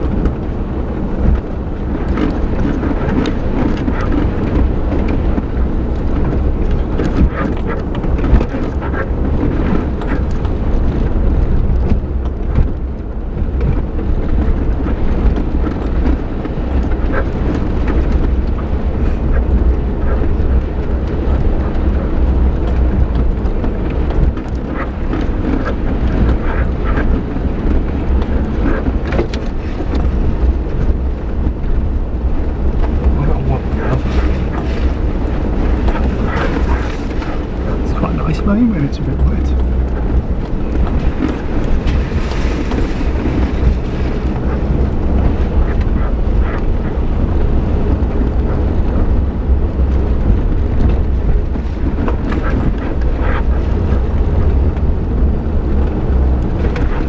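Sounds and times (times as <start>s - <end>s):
engine and tyre rumble: 0.0s - 57.0s.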